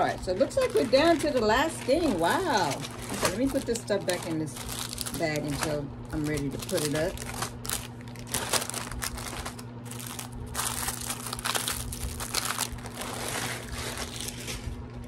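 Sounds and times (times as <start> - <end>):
plastic bag rustling and crinkling: 0.0 - 14.9.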